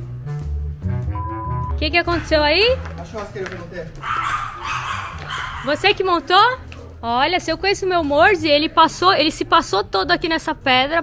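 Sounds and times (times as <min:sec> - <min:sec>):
dog whining and yipping: 0:04.0 - 0:05.8.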